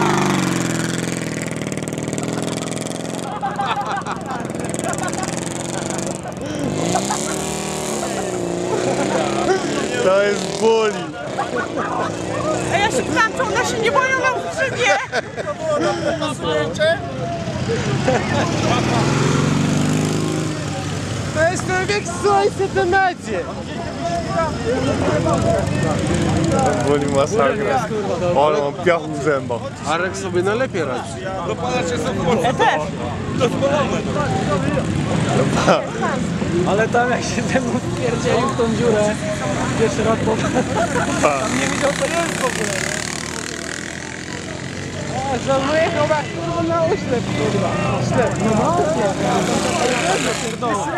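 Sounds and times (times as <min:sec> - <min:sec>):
engine revving up: 0:00.0 - 0:13.8, 0:17.9 - 0:21.9, 0:38.8 - 0:45.8, 0:47.2 - 0:50.8.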